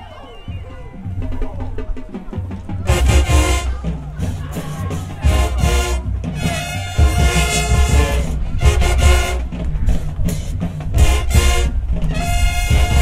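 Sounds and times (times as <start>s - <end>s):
marching band brass: 0.0s - 13.0s
heavy low drum beats: 0.5s - 13.0s.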